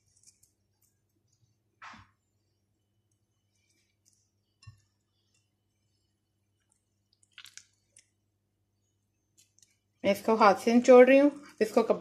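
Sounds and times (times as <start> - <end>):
wet squeezing of grated cucumber: 6.6 - 8.2.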